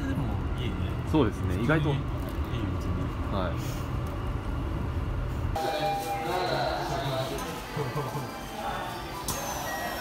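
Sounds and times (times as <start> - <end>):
steady high tone: 5.6 - 10.0.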